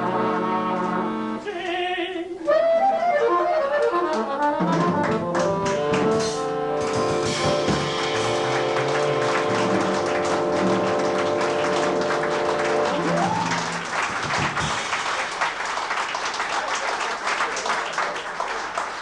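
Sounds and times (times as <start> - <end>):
jazz band held chord: 0.0 - 1.4, 2.6 - 15.5
audience applauding: 6.8 - 19.0.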